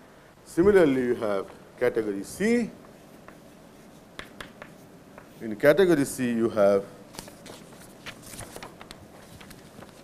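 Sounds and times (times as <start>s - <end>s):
paper rustling: 7.1s - 10.0s.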